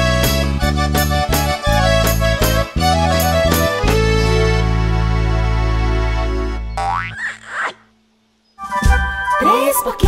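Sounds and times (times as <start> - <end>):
held music chord: 0.0 - 6.8
cartoon boing spring sound: 6.8 - 7.9.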